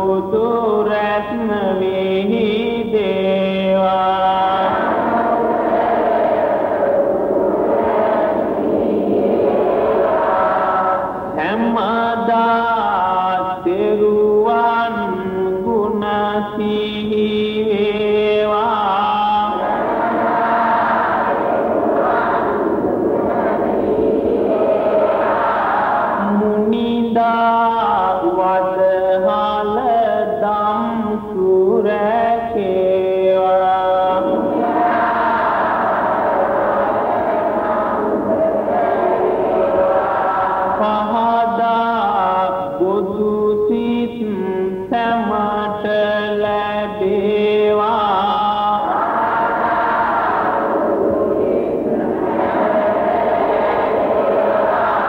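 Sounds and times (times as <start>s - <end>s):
chant-like layered vocal music: 0.0s - 55.0s.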